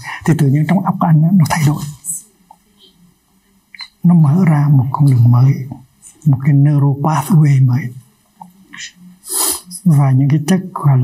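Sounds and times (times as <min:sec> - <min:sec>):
faint small noises: 0:00.0 - 0:11.0
voice: 0:00.0 - 0:11.0.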